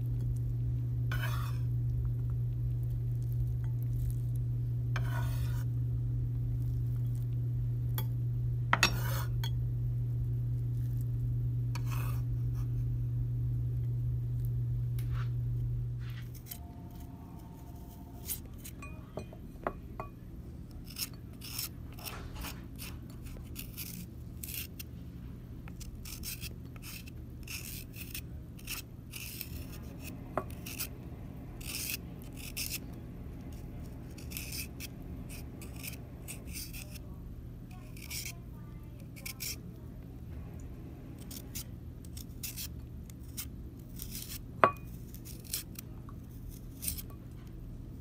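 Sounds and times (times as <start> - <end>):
peeler scraping a carrot: 1.1 - 1.9, 3.1 - 5.8, 8.8 - 9.5, 11.7 - 12.8, 16.2 - 18.9, 20.7 - 24.9, 25.7 - 31.0, 31.6 - 39.7, 41.2 - 47.4
ringing clink against bowl: 18.8 - 20.2.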